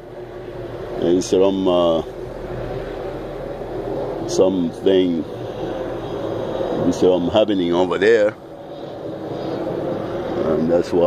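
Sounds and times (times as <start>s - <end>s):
air-conditioning units humming: 0.0s - 11.0s.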